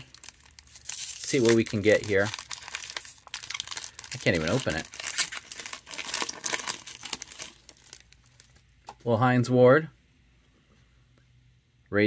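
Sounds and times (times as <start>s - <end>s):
foil wrapper crinkling and tearing: 0.0s - 8.6s.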